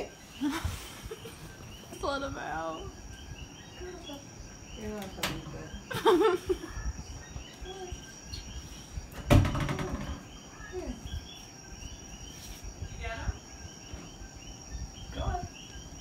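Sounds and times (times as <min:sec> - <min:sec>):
night creatures chirping: 0:00.0 - 0:16.0
thump: 0:09.2 - 0:10.2.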